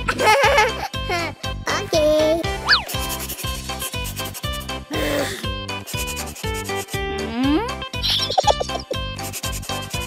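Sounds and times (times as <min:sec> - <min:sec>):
light background music: 0:00.0 - 0:10.0
paintbrush rubbing on canvas: 0:02.7 - 0:04.8, 0:05.8 - 0:07.0, 0:08.6 - 0:10.0.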